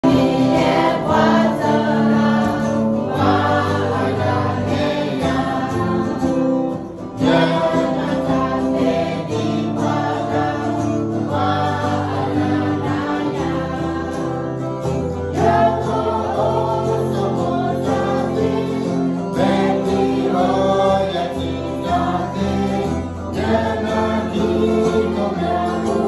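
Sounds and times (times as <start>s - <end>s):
group singing: 0.0s - 26.0s
guitar accompaniment: 0.0s - 26.0s.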